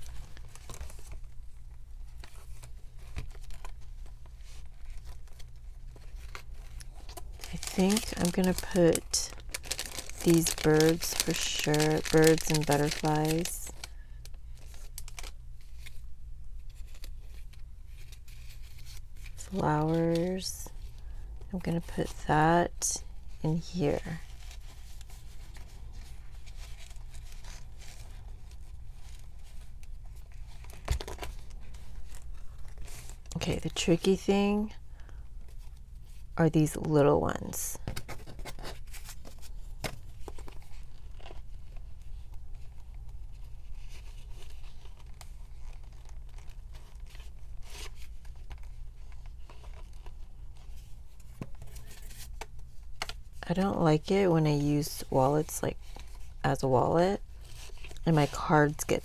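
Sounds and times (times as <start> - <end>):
paper rustling and crinkling: 0.0 - 36.3, 37.8 - 54.1, 55.0 - 59.0.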